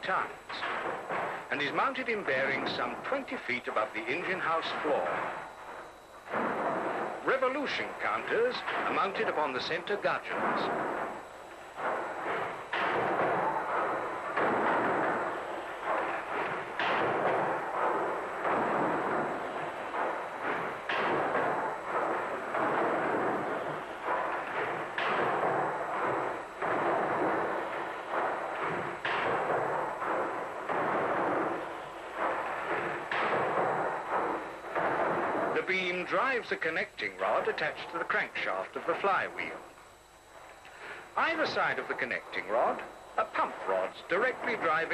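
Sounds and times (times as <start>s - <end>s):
steam engine mechanical rumble: 0.0s - 44.9s.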